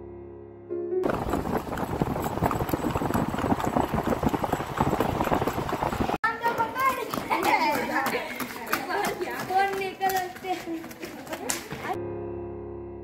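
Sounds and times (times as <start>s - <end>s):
horse hooves clip-clopping: 1.0s - 12.0s
people's voices and calls: 6.2s - 12.0s.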